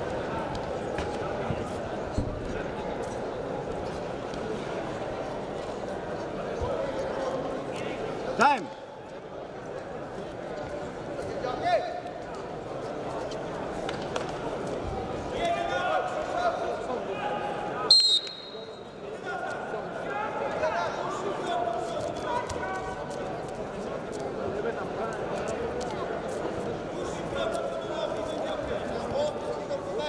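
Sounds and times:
referee whistle blast: 17.9 - 18.8.

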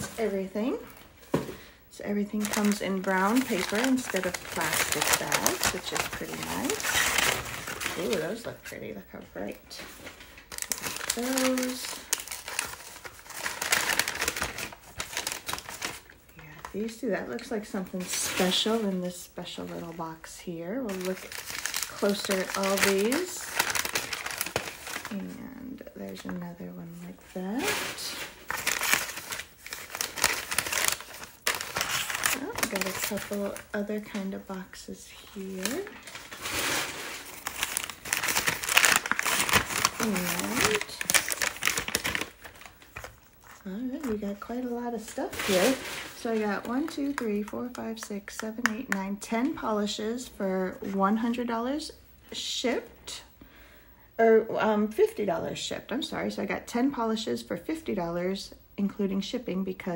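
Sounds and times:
packing paper crinkling: 2.2 - 20.0, 20.8 - 49.0.

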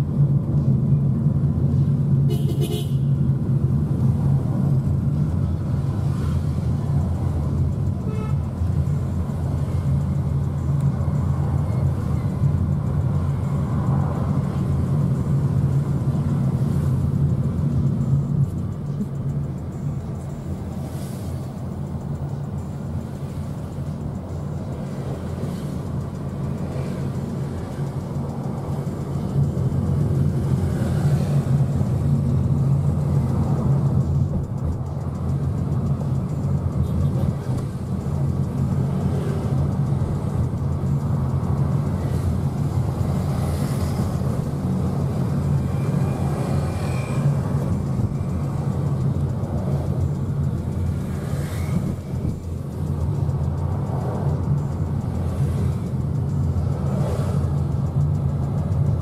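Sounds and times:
vehicle engine and road noise: 0.0 - 59.0.

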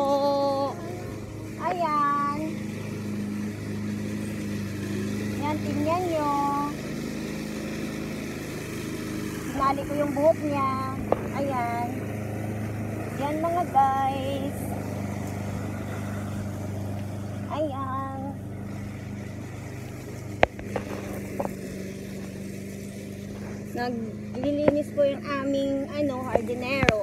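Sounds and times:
motor humming: 0.0 - 27.0
small engine running steadily: 0.0 - 27.0.

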